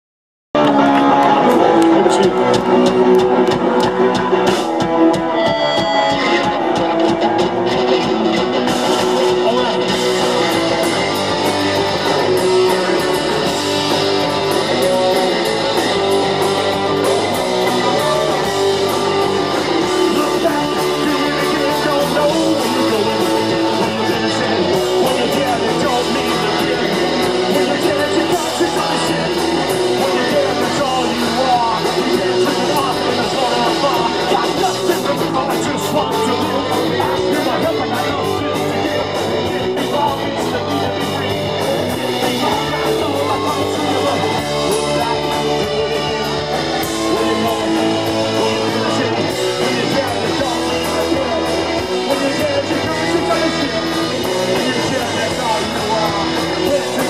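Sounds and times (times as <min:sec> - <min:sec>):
drum kit: 0:00.6 - 0:57.0
electric guitars: 0:00.6 - 0:57.0.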